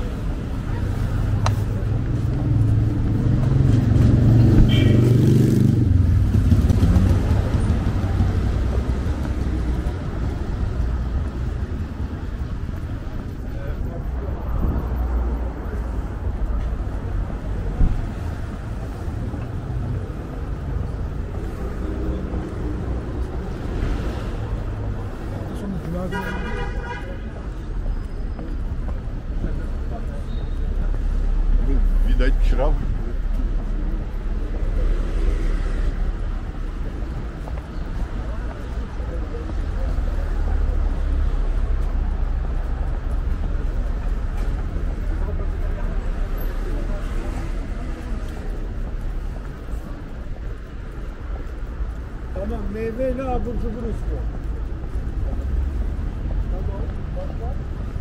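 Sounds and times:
cars driving past: 0.0s - 58.0s
passers-by talking: 0.0s - 58.0s.

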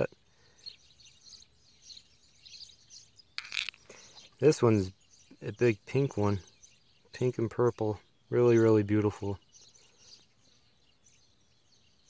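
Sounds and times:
wild birds chirping: 0.0s - 12.0s.

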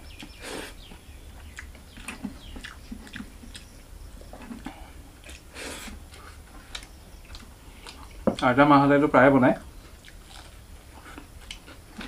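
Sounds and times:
faint chewing: 0.0s - 8.5s, 9.8s - 12.0s.

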